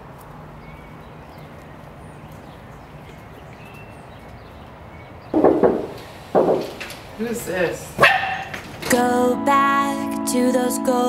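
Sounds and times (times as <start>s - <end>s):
dog barking loudly: 8.0s - 8.6s.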